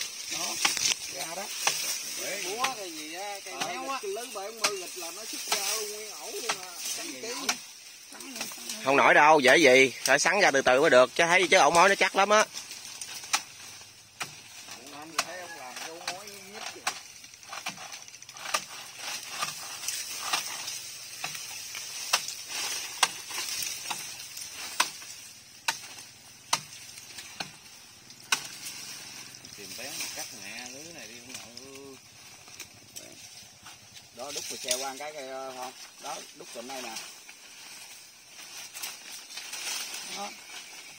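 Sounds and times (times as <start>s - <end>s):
steady high hiss: 0.0s - 40.9s
twigs and dry brush snapping: 0.0s - 40.9s.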